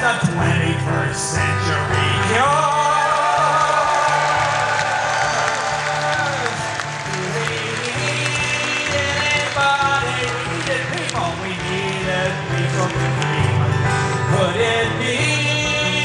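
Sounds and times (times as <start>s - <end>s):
acoustic guitar strumming: 0.0s - 16.0s
person singing: 0.0s - 16.0s
audience applauding: 2.8s - 13.6s.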